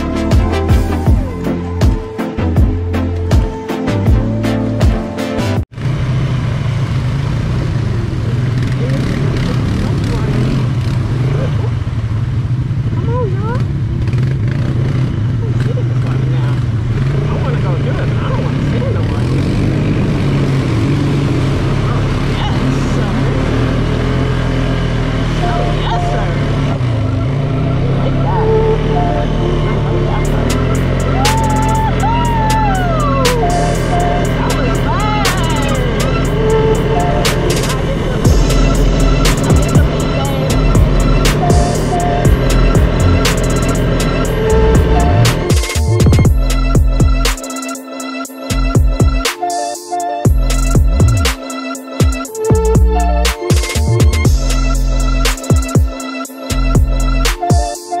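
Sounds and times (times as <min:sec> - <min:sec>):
atv engine running: 0:05.7 - 0:47.3, 0:50.3 - 0:51.4.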